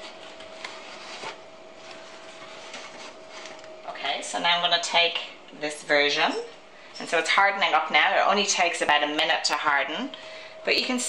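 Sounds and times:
oven mitts scraping vinyl record: 0:00.0 - 0:03.8
faint steady hum: 0:00.0 - 0:11.0.

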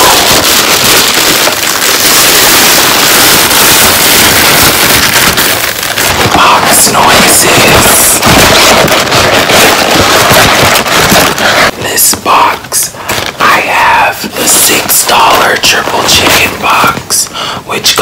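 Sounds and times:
plastic bag crinkling: 0:00.0 - 0:17.2
cardboard box being opened: 0:07.0 - 0:11.7.

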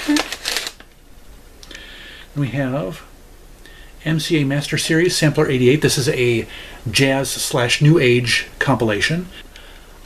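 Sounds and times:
crinkly rustling of plastic cases: 0:00.0 - 0:00.9.

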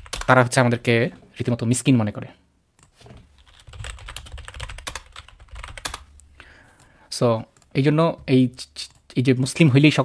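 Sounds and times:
computer keyboard typing: 0:00.0 - 0:00.3, 0:02.8 - 0:06.1.

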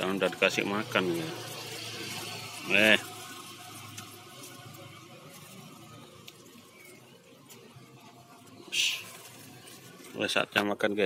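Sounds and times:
faint steady rushing noise: 0:00.0 - 0:11.0.

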